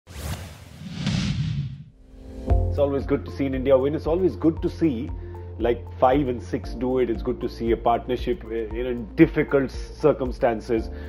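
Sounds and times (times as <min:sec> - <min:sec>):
whoosh sound effects: 0:00.1 - 0:02.4.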